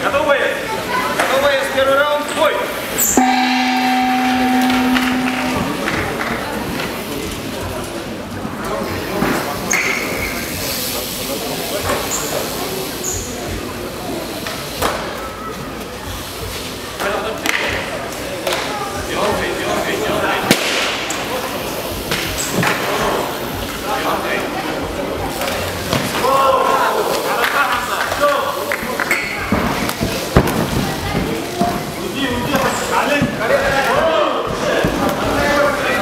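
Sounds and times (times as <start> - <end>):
crowd chatter: 0.0 - 36.0
low buzzer tone: 3.2 - 6.2.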